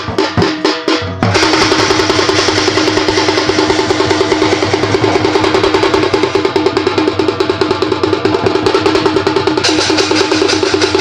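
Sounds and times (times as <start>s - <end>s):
barrel drum played by hand: 0.0s - 11.0s
small drums beaten with sticks: 0.0s - 11.0s
brass hand cymbals clashing: 0.1s - 11.0s.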